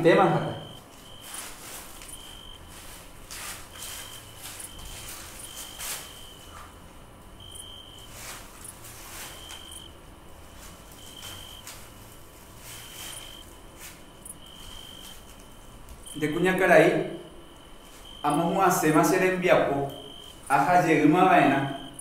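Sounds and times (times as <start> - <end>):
cricket chirping: 0.0 - 22.0
soft rustles: 0.6 - 16.2.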